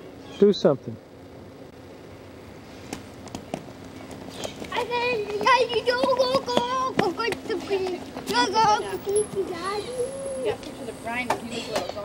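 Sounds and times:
faint steady hum: 0.0s - 12.0s
young child's high-pitched voice: 4.7s - 12.0s.

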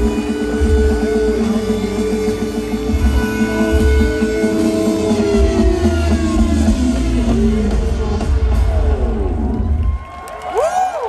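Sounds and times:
heavy steady bass: 0.0s - 10.0s
live band held notes: 0.0s - 10.4s.

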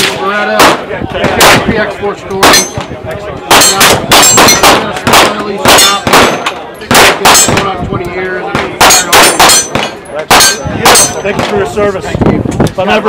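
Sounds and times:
pistol shots: 3.5s - 7.8s, 8.4s - 11.6s.

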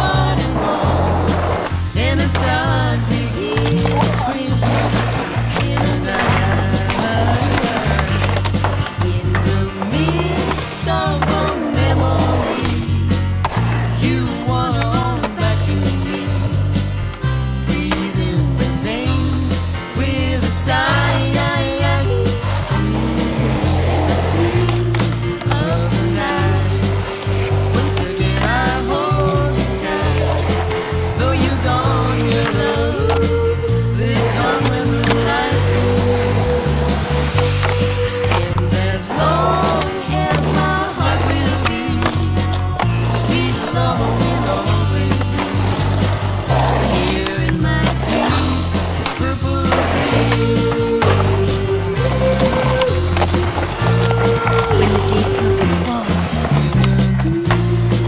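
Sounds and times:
song with steady bass line: 0.0s - 58.0s
skateboard knocking and landing: 0.2s - 13.8s
skateboard rolling on asphalt: 0.2s - 17.3s, 20.7s - 57.4s.

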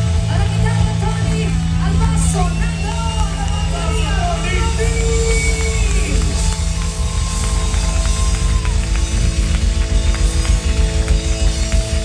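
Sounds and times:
busy drum-kit beats: 0.0s - 12.0s
live band playing: 0.0s - 12.0s.

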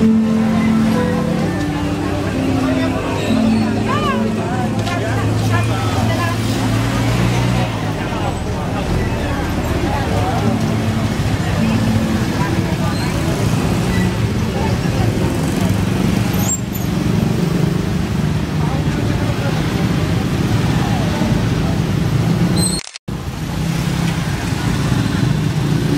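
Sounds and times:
people talking: 0.0s - 16.5s, 17.1s - 22.1s
motorcycle engines droning: 0.0s - 25.9s.

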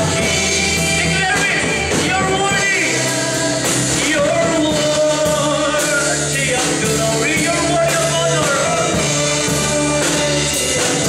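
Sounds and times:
live band with drums and bass: 0.0s - 11.0s
man singing into a microphone: 0.0s - 11.0s.

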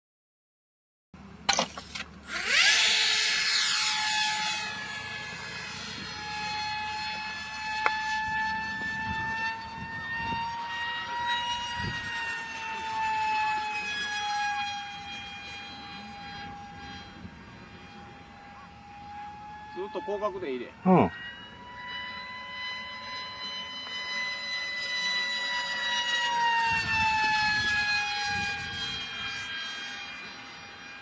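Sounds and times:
electric motor whine: 1.5s - 31.0s.

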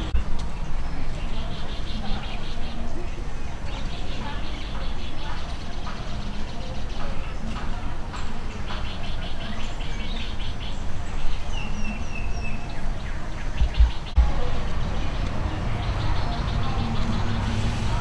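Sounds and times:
birds chirping: 0.0s - 18.0s.

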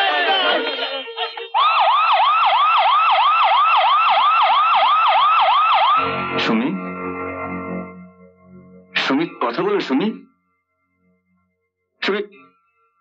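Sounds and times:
excited voices: 0.0s - 1.8s
ambulance siren yelping: 0.0s - 6.5s.

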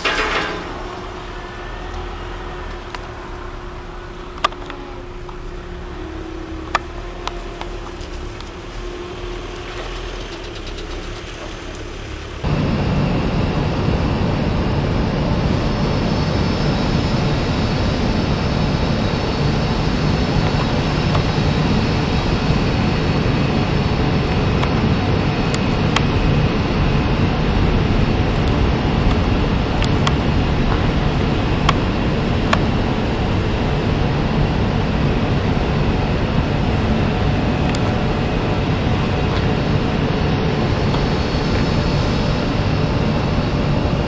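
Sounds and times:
industrial machinery with whining: 0.0s - 44.0s
low hum: 0.0s - 44.0s.

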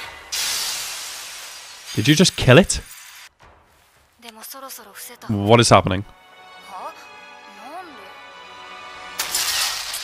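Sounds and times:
quiet background music: 3.5s - 10.0s
crashing shattering sound effect: 9.2s - 10.0s.

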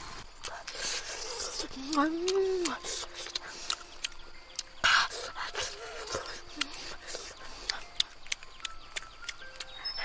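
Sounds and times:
chewing with wet clicks: 0.4s - 10.0s.

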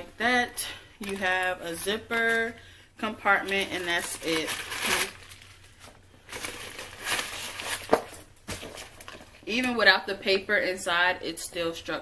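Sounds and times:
paper crinkling and rustling: 3.3s - 8.0s.

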